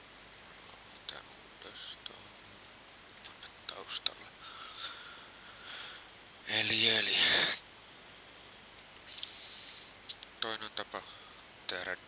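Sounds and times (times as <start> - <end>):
faint breathing: 4.3 - 6.2, 7.1 - 7.6, 9.1 - 10.0, 11.0 - 11.6
soft mouse clicks: 10.1 - 10.3.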